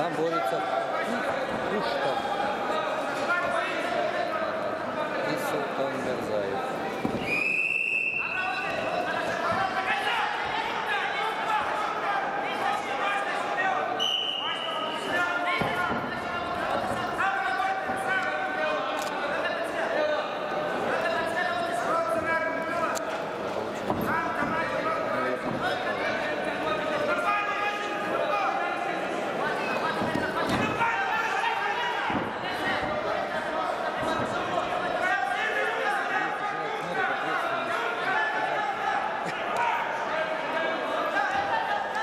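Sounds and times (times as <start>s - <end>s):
voices calling out in echoing hall: 0.0s - 42.0s
referee's whistle blast: 7.2s - 8.6s, 14.0s - 15.0s.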